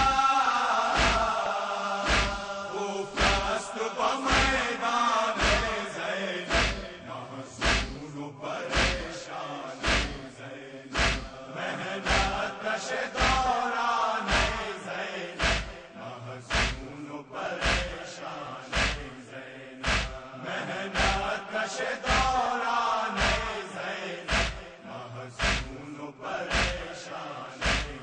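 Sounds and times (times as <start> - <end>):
male voices chanting a lament: 0.0 - 28.0
rhythmic chest-beating thuds: 0.0 - 28.0.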